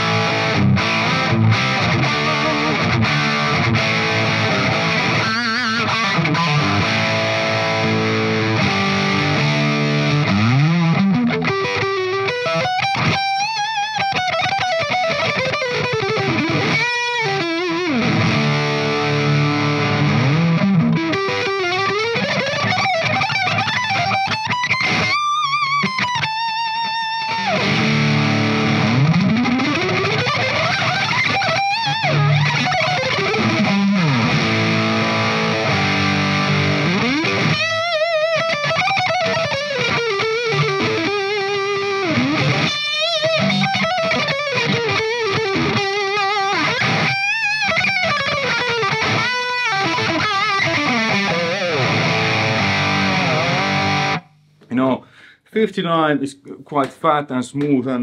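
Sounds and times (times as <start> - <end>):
overdriven electric guitar lead: 0.0 - 55.4.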